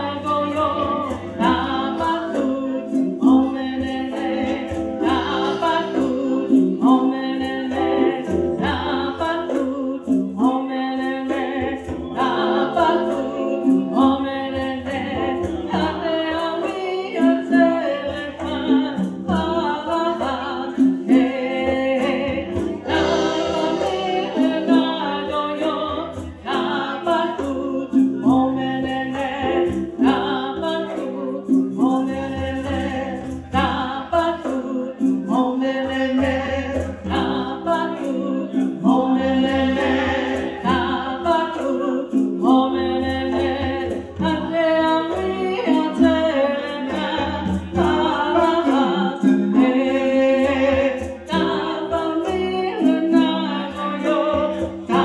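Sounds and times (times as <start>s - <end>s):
hand-drum beat: 0.0s - 55.0s
sustained keyboard chords: 0.0s - 55.0s.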